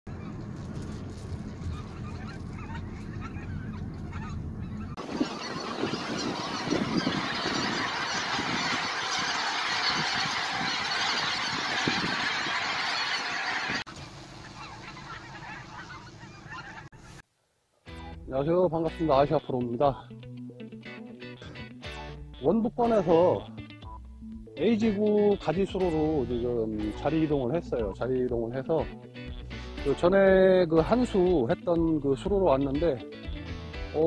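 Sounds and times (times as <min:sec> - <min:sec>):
car engine hum: 0:00.1 - 0:07.3
geese honking in flight: 0:01.5 - 0:17.2.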